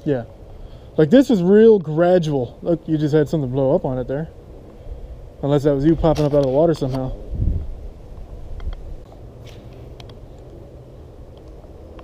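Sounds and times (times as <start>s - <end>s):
wind rumble on microphone: 2.5s - 12.0s.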